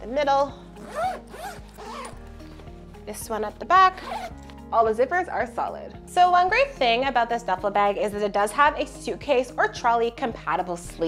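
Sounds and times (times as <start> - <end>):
background music: 0.0 - 11.0
bag zipper being pulled: 0.8 - 2.6, 3.9 - 4.5.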